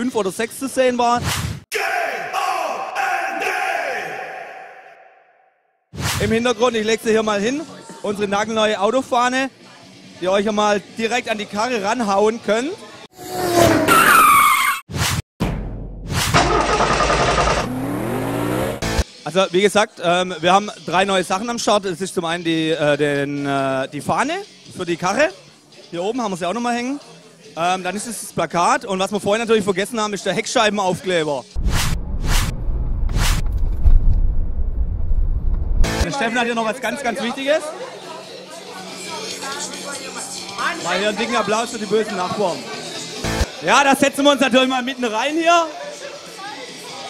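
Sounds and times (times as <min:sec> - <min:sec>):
tyres screeching: 0:13.2 - 0:14.9
car engine revving: 0:16.4 - 0:19.0
deep rumble: 0:31.6 - 0:36.0.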